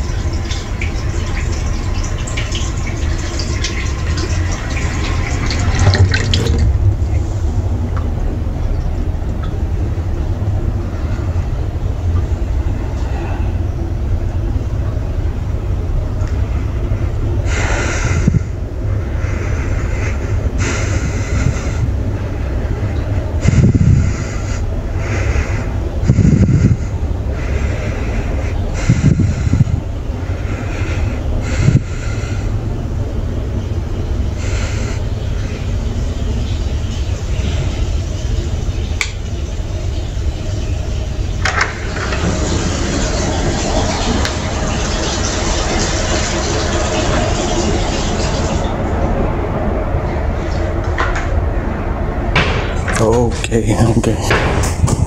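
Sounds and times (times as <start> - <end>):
tap water running into sink: 0.0 - 6.7
low rumble: 0.0 - 55.0.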